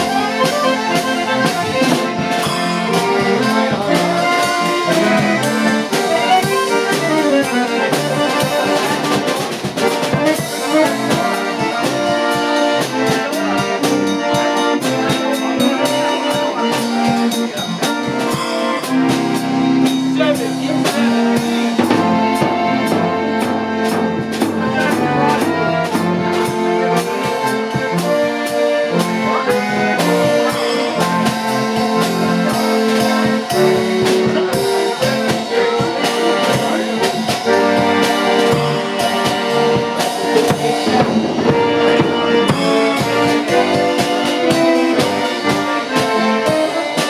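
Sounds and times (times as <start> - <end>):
concertina playing chords: 0.0 - 47.0
drum kit playing: 0.0 - 47.0.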